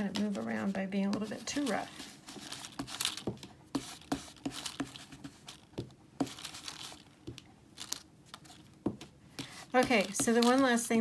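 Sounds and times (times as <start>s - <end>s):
ink tool dabbing on card: 0.0s - 7.4s, 9.3s - 11.0s
plastic stencil crinkling: 0.0s - 11.0s.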